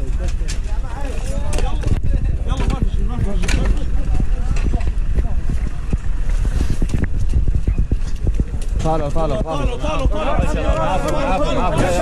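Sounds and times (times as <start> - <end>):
microphone handling rumble: 0.0 - 12.0.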